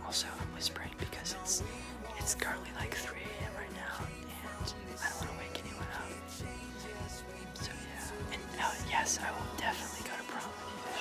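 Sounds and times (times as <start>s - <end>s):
quiet music with low beat: 0.0s - 11.0s.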